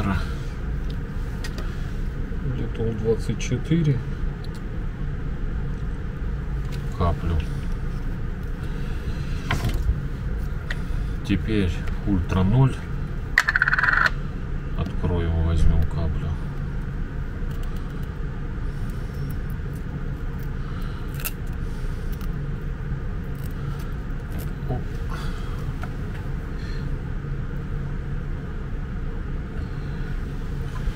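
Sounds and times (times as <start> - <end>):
low background rumble: 0.0 - 30.9.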